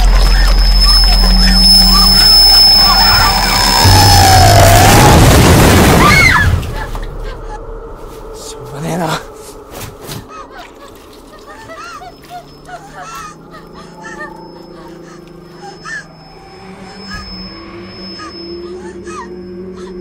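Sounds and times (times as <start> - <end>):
squeaky chirping calls: 0.0 - 3.9, 11.4 - 20.0
low drone: 0.0 - 20.0.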